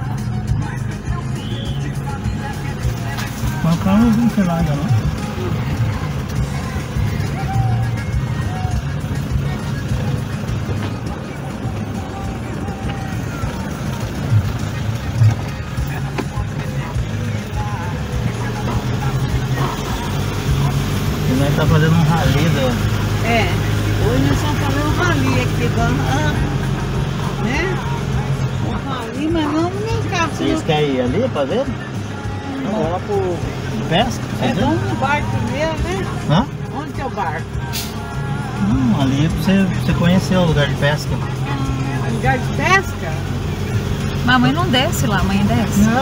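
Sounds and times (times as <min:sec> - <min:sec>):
car engine and road rumble: 0:00.0 - 0:46.0
music: 0:00.0 - 0:46.0.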